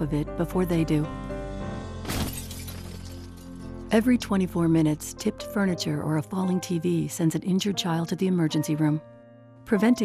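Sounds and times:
soft background music: 0:00.0 - 0:10.0
television crashing to floor: 0:02.0 - 0:03.3
glass shattering: 0:02.0 - 0:03.6.

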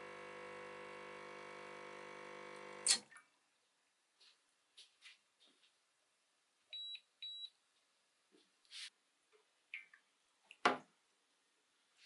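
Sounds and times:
espresso machine pump humming: 0:00.0 - 0:02.9.

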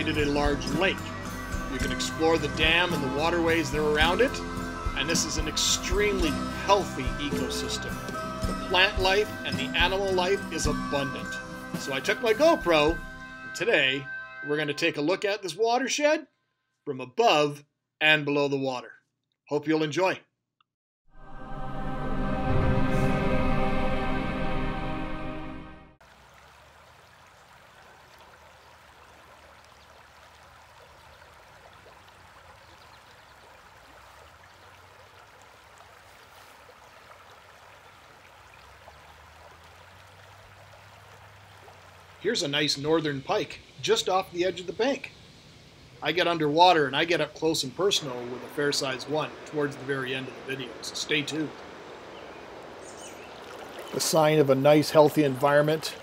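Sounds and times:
river water babbling over stones: 0:26.0 - 0:42.9, 0:46.2 - 0:56.0.

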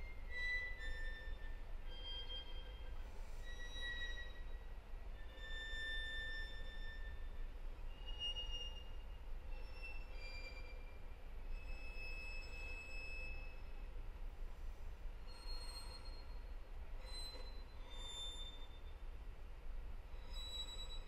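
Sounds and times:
low room rumble: 0:10.6 - 0:20.3.

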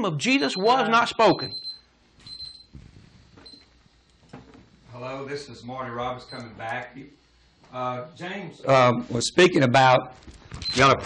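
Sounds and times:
faint high electronic beeps: 0:00.3 - 0:02.7.

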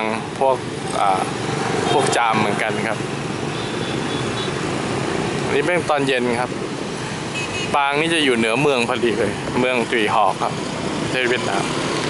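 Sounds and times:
motorbike engines passing: 0:00.0 - 0:12.0
road noise: 0:00.0 - 0:12.0.

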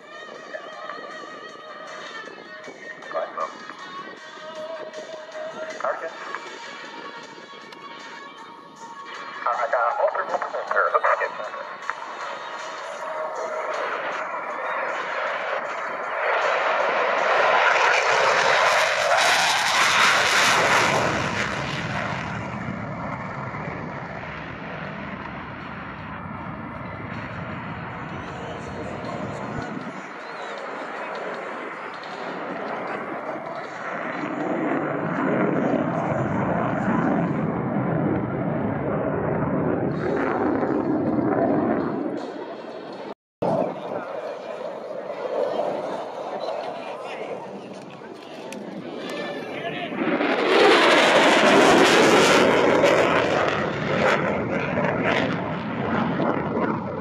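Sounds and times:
jet engine roar: 0:09.4 - 0:57.0.

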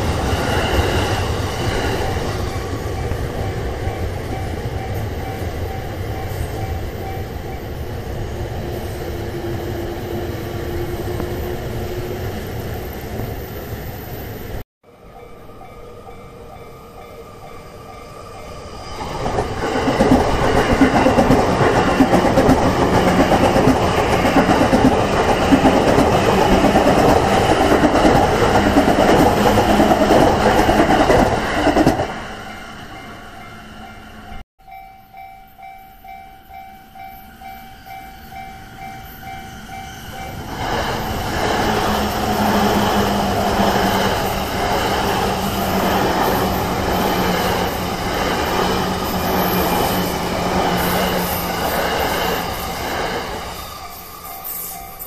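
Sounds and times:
level-crossing warning bell: 0:00.0 - 0:08.0, 0:14.8 - 0:40.6, 0:41.7 - 0:55.0
electric trains rumbling over rails: 0:00.0 - 0:55.0.

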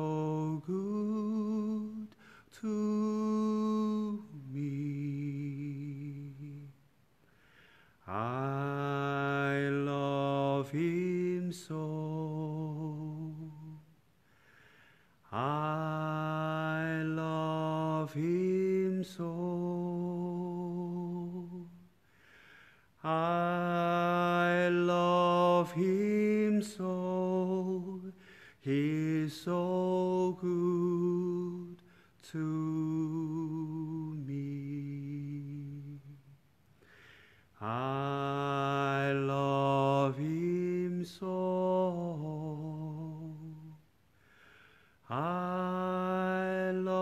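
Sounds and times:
man singing unaccompanied: 0:00.0 - 0:06.8, 0:08.0 - 0:13.9, 0:15.2 - 0:21.9, 0:23.0 - 0:36.4, 0:37.6 - 0:43.8, 0:45.0 - 0:47.0.

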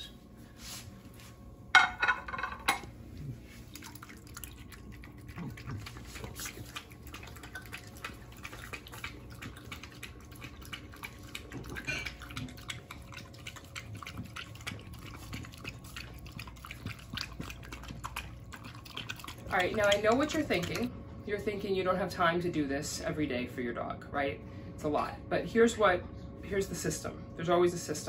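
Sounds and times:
dog lapping from bowl: 0:03.4 - 0:20.9.

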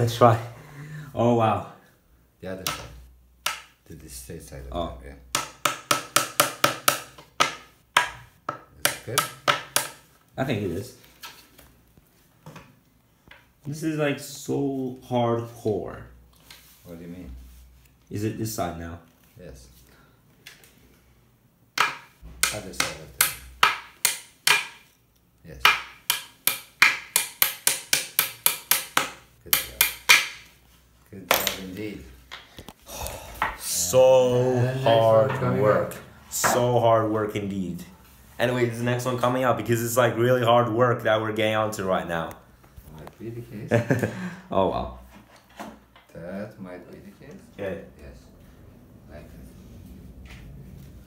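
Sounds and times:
hammer knocking on wooden boards: 0:05.3 - 0:10.0, 0:21.8 - 0:24.8, 0:25.6 - 0:30.5.

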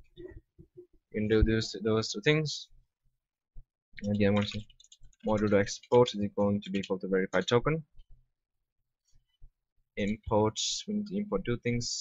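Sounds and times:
keyboard keys clicking: 0:04.0 - 0:07.5.

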